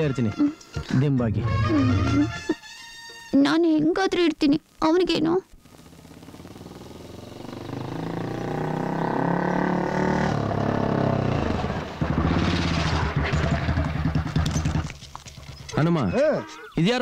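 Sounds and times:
motorcycle engine: 5.7 - 16.1.

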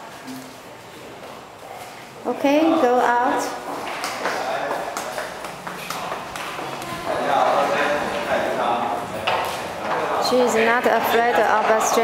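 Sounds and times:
murmur of voices: 0.9 - 12.0
footsteps on hard floor: 3.6 - 8.3.

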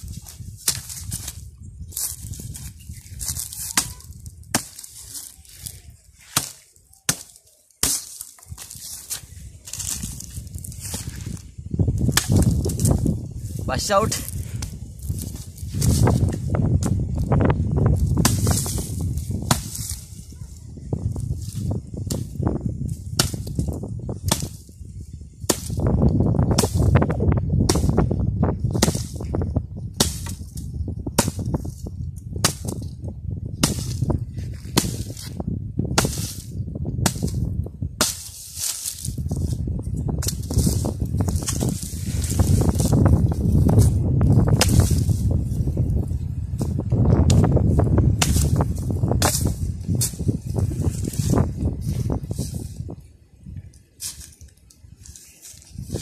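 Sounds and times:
wind rumble on microphone: 0.0 - 6.4, 8.4 - 56.0
axe chopping wooden sticks: 0.1 - 11.4, 12.0 - 13.1, 14.6 - 17.0, 17.9 - 20.1, 21.5 - 22.3, 23.0 - 24.7, 25.4 - 29.3, 29.9 - 33.0, 33.6 - 39.6, 40.2 - 45.4, 46.6 - 51.5.

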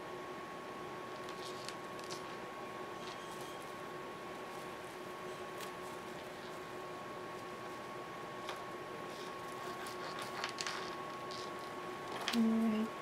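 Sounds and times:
steady hum: 0.0 - 13.0.

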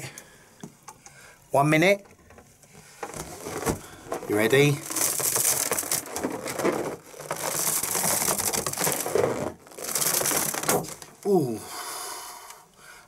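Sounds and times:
balloons rubbing together squeaking: 3.0 - 11.2.

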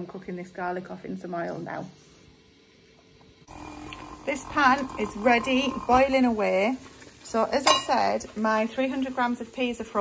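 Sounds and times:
water boiling in lidded saucepan: 0.1 - 10.0.

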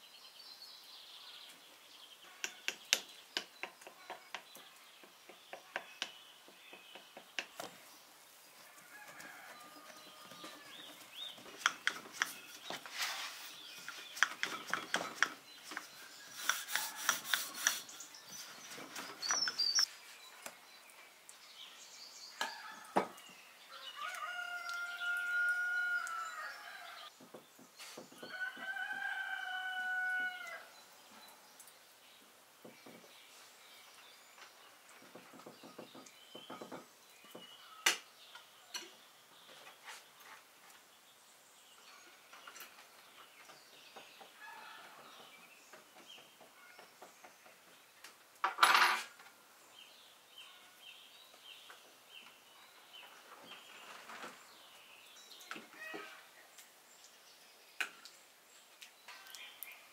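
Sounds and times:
rooster crowing: 8.7 - 10.8, 23.7 - 27.1, 28.3 - 30.7.

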